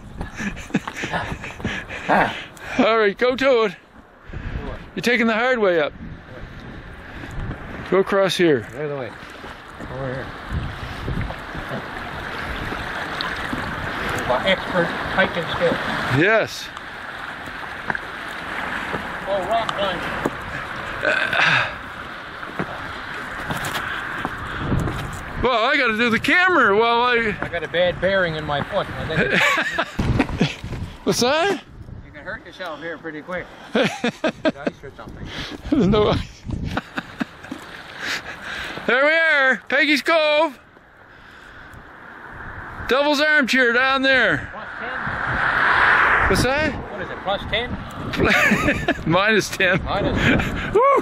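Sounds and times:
sea on shore rocks: 0.0 - 51.0
steady wind: 0.0 - 51.0.

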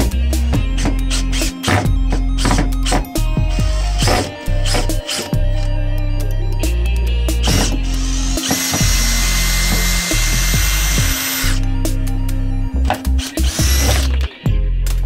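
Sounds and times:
music with low beat: 0.0 - 15.0
cordless drill whining: 0.7 - 5.7, 7.4 - 11.7, 12.9 - 14.3.

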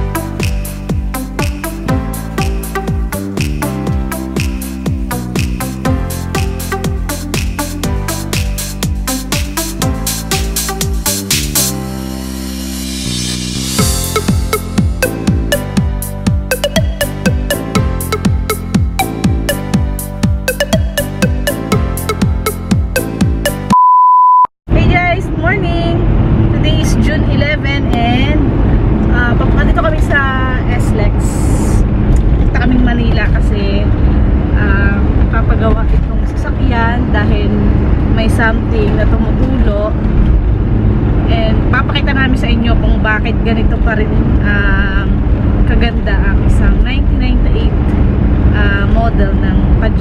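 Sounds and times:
high test-tone beep: 13.8 - 24.5
road and engine rumble in car: 24.7 - 50.0.

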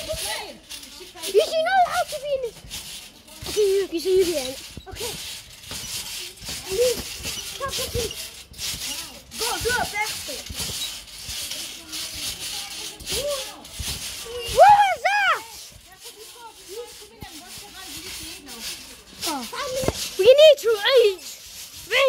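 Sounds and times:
children calling and chattering: 0.0 - 22.0.

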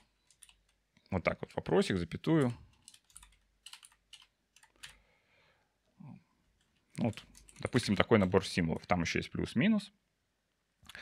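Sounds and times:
computer keyboard keystrokes: 0.0 - 0.8, 2.4 - 5.0, 6.6 - 8.4.

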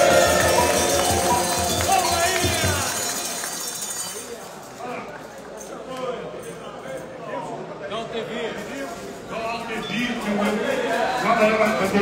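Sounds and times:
hand clapping: 0.0 - 4.3
murmur of voices: 0.0 - 12.0.

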